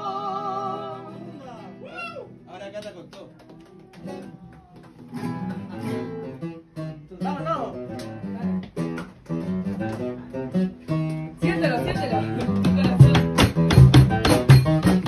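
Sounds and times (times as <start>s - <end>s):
acoustic guitars playing: 0.0s - 15.0s.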